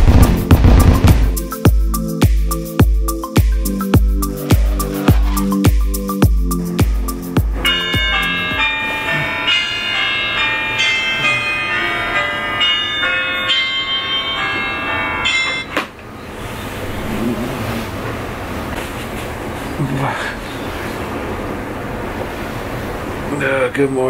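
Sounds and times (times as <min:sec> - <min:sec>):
smartphone alarm chiming melody: 0:07.6 - 0:15.8
bedding rustling: 0:16.4 - 0:23.2.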